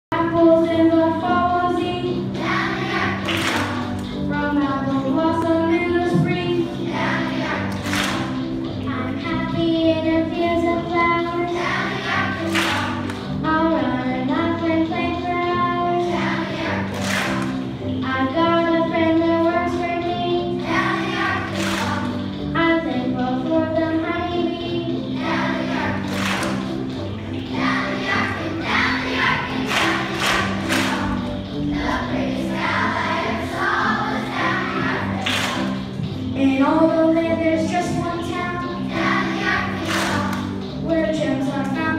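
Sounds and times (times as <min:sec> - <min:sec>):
instrumental accompaniment: 0:00.1 - 0:41.9
children's choir singing: 0:00.2 - 0:41.9
percussion hits: 0:07.6 - 0:08.5, 0:16.9 - 0:17.7, 0:26.0 - 0:28.8, 0:29.4 - 0:32.6, 0:35.0 - 0:36.3.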